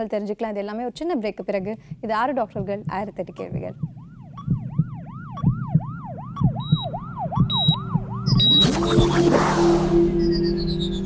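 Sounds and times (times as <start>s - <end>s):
steady electronic beat: 2.0s - 11.0s
yelping siren-like sound effect: 4.0s - 11.0s
short high beeps: 7.5s - 11.0s
loud whoosh: 7.9s - 11.0s
music: 8.3s - 11.0s.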